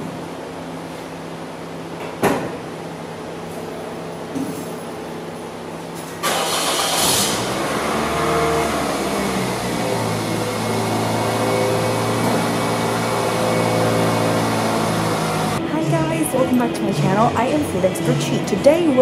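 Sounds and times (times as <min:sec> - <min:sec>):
car engine starting and idling: 0:06.2 - 0:17.9.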